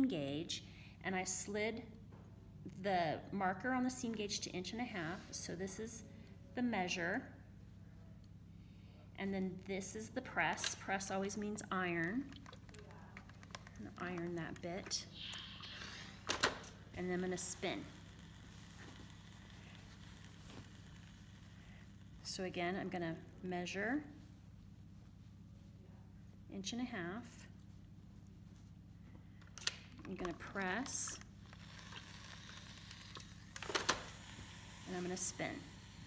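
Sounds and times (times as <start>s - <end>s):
iron hissing on fabric: 17.2s - 22.7s, 32.6s - 36.0s
steam iron hissing: 31.7s - 36.0s.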